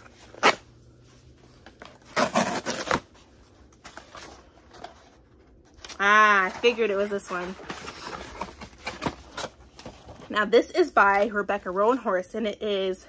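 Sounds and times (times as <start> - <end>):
cardboard ripping and rustling: 1.8 - 3.2.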